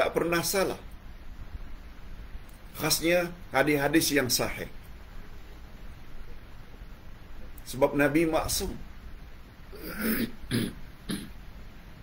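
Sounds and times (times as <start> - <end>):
man's short throat sounds: 9.7 - 11.4.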